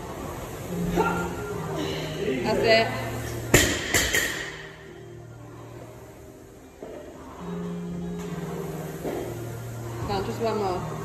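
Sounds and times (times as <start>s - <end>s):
background music: 0.0s - 11.0s
barbell dropping on rubber floor: 3.5s - 4.6s.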